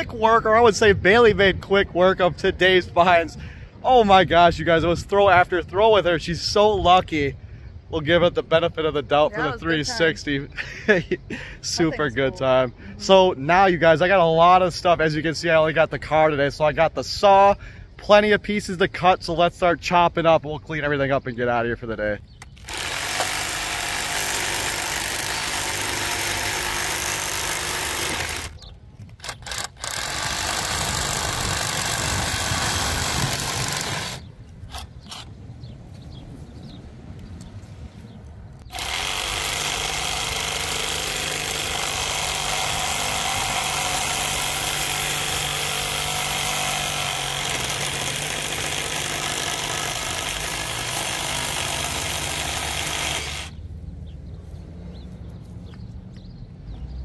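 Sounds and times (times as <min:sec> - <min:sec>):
reciprocating saw cutting metal: 0:22.6 - 0:28.6, 0:29.2 - 0:35.3, 0:38.7 - 0:53.5.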